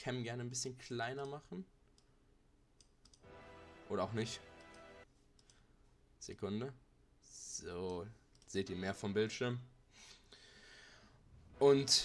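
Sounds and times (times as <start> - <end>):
computer mouse clicks: 1.2 - 2.1, 2.8 - 3.2, 4.6 - 5.6, 7.8 - 8.6
held chord of intro music: 3.3 - 5.0.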